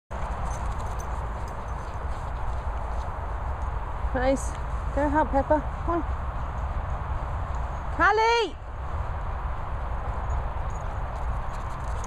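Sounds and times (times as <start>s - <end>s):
wind buffeting microphone: 0.1s - 12.0s.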